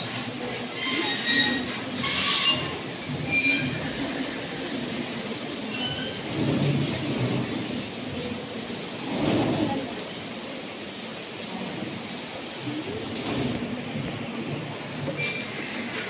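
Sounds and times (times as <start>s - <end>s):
murmuring room: 0.0s - 16.0s.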